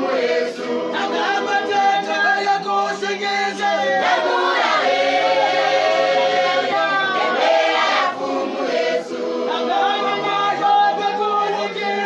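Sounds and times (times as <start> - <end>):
group of voices singing: 0.0 - 12.0.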